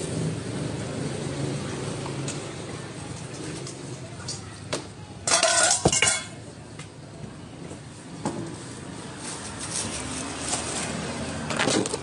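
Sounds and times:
metal kitchenware clattering: 0:05.2 - 0:06.4.

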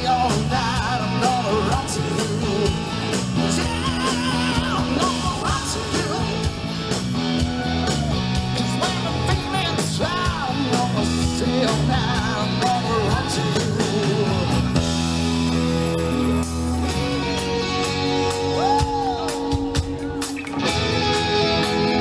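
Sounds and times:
person singing: 0:00.0 - 0:06.6, 0:07.4 - 0:14.8
bass guitar: 0:00.0 - 0:22.0
drums: 0:00.0 - 0:22.0
electric guitar: 0:00.0 - 0:22.0.

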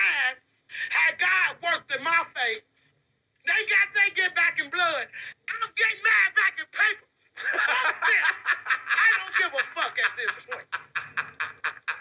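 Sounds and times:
man laughing out loud: 0:07.4 - 0:12.0.

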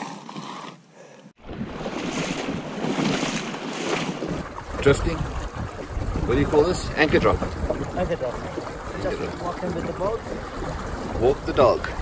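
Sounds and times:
river water flowing: 0:01.4 - 0:12.0
wind buffeting microphone: 0:01.4 - 0:12.0.

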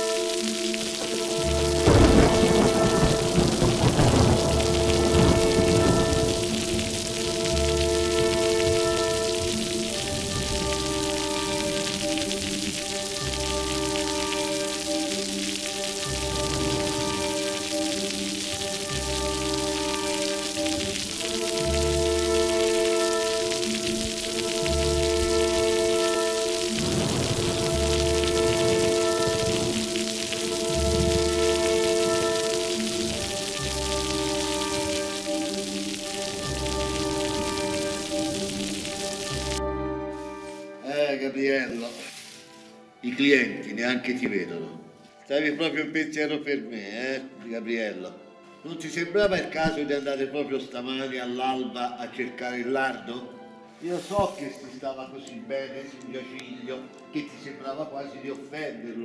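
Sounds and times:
heavy rain: 0:00.0 - 0:40.9, 0:41.6 - 0:43.1
slow music of held chords: 0:00.0 - 0:40.9
thunder rumble: 0:01.0 - 0:12.9, 0:20.9 - 0:35.3.

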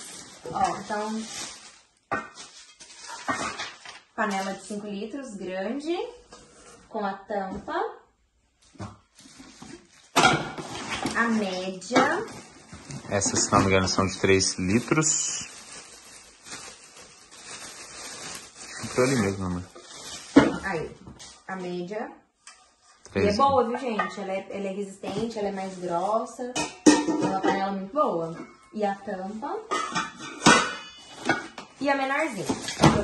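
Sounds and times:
plastic wrap rustling: 0:00.0 - 0:05.2, 0:08.6 - 0:21.8, 0:24.6 - 0:33.0.

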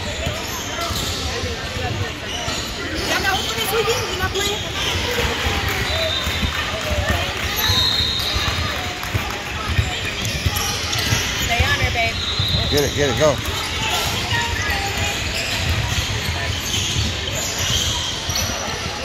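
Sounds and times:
voices in large hall: 0:00.0 - 0:19.0.

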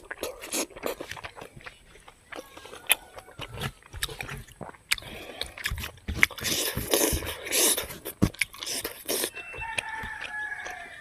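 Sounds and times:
rooster crowing: 0:02.4 - 0:03.9, 0:09.3 - 0:11.0.

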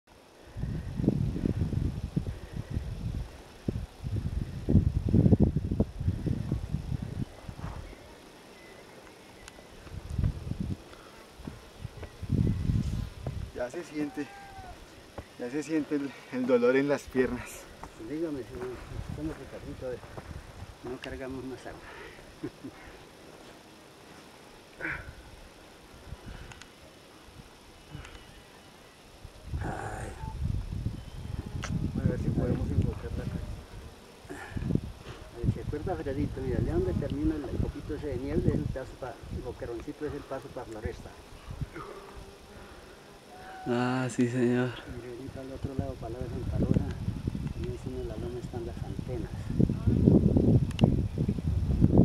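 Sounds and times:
wind buffeting microphone: 0:00.4 - 0:08.0, 0:09.8 - 0:13.6, 0:17.1 - 0:20.8, 0:29.4 - 0:42.3, 0:44.9 - 0:52.0.

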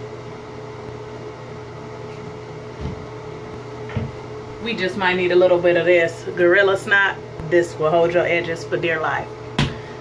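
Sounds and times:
ventilation fan humming: 0:00.0 - 0:10.0.

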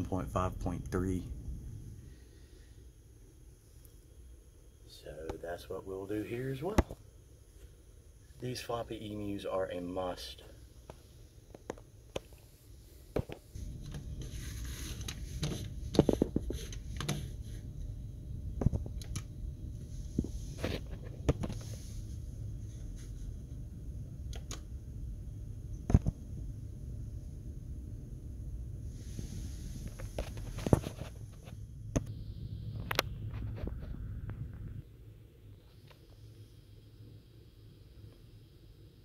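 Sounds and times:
computer equipment humming: 0:00.0 - 0:39.0
sharp clicks: 0:24.3 - 0:24.6.

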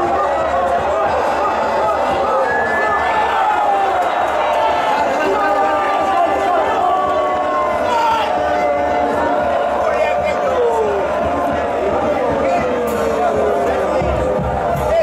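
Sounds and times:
stadium crowd shouting: 0:00.0 - 0:15.0.

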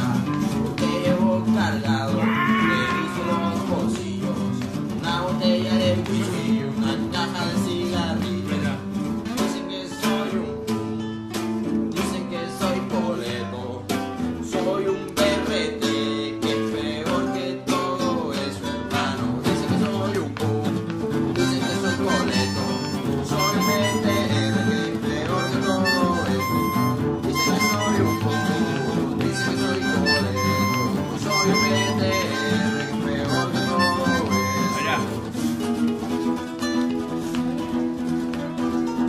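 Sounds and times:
guitars strumming: 0:00.0 - 0:39.0
harmonica: 0:21.3 - 0:35.8.

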